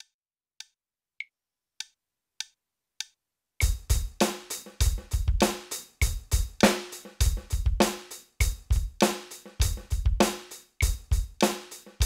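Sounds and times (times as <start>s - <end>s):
electronic drum kit rock groove: 3.6s - 12.0s.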